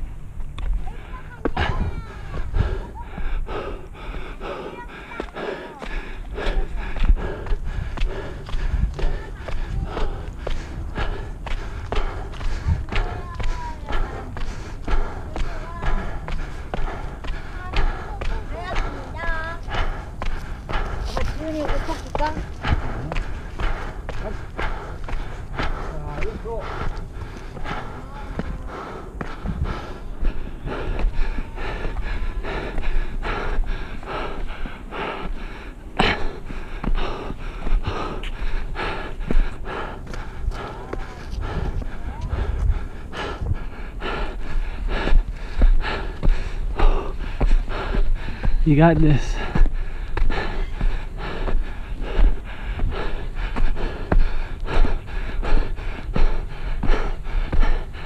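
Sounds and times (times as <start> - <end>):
low microphone rumble: 0.0 - 58.0
voices of hikers: 0.0 - 58.0
footsteps on wooden stairs: 4.4 - 58.0.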